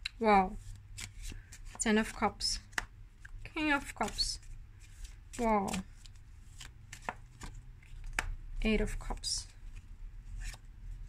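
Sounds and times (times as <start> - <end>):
cards clicking and tapping: 1.0 - 10.6.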